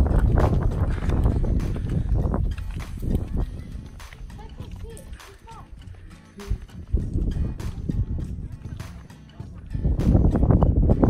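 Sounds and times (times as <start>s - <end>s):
wind rumbling on microphone: 0.0s - 5.7s, 6.5s - 11.0s
footsteps on rock: 0.0s - 10.2s.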